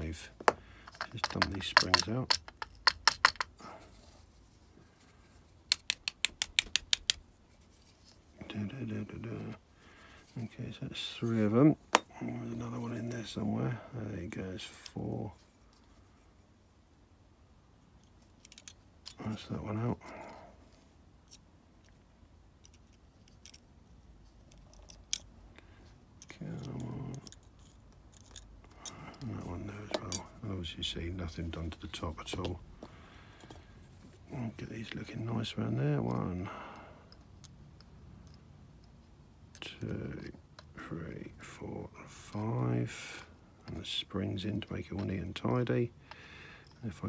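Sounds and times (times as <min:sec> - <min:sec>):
metal pick clicks and scrapes in lock: 0:18.0 - 0:19.2, 0:22.6 - 0:23.7, 0:24.3 - 0:25.3, 0:26.2 - 0:29.2.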